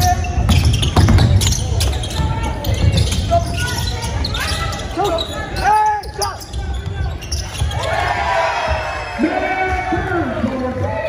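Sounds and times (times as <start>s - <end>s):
basketball bouncing on court: 0.0s - 3.9s.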